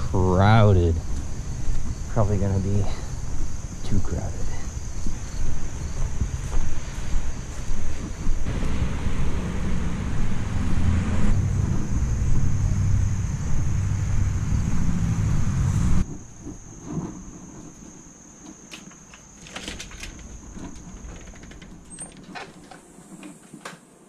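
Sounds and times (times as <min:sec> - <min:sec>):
wind buffeting microphone: 0:00.0 - 0:17.8.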